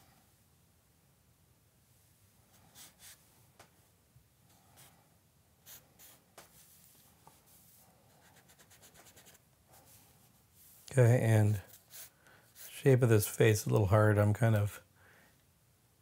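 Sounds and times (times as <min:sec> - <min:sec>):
charcoal scratching on paper: 0:05.6 - 0:10.0, 0:10.6 - 0:12.9.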